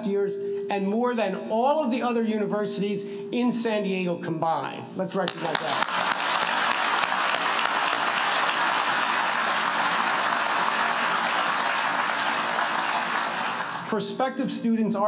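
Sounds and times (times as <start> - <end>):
large audience applauding: 5.3 - 14.0.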